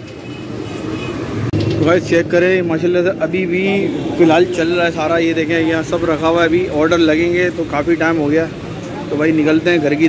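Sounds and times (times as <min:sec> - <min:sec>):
traffic hum: 0:00.0 - 0:10.0
crowd noise with faint voices: 0:01.6 - 0:10.0
man talking: 0:01.8 - 0:10.0.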